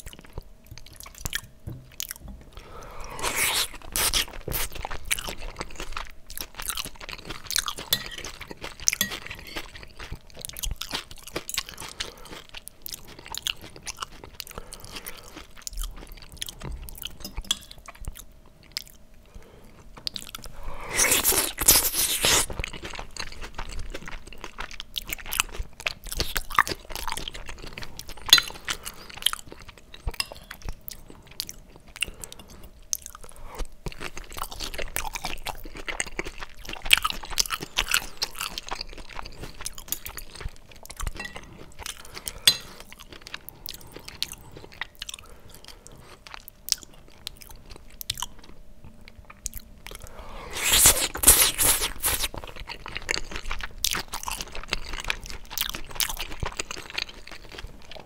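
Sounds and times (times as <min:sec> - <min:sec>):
wet chewing: 0:20.0 - 0:33.2, 0:49.2 - 0:58.0
mouth clicks and smacks: 0:50.5 - 0:52.3.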